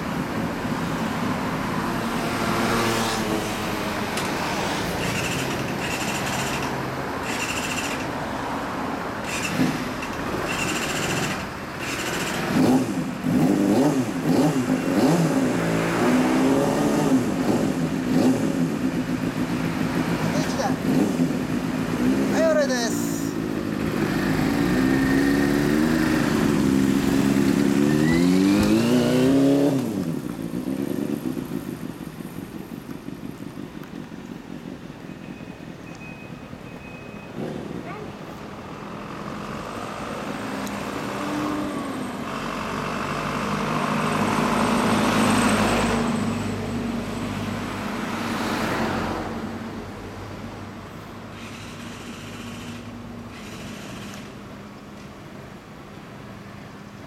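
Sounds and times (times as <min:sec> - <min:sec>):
street sound: 0:00.0 - 0:57.0
motorcycle engines revving: 0:00.9 - 0:34.8, 0:37.3 - 0:49.6, 0:51.3 - 0:54.6.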